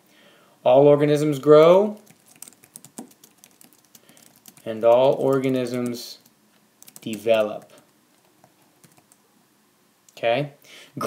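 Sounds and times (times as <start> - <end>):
typing on a keyboard: 2.0 - 9.2.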